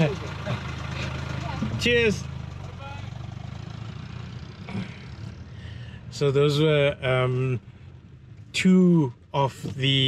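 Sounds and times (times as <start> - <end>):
engine idling: 0.0 - 8.5.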